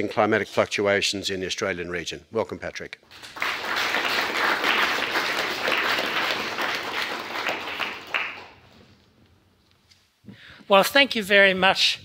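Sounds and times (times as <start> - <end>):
audience applauding: 3.1 - 8.7.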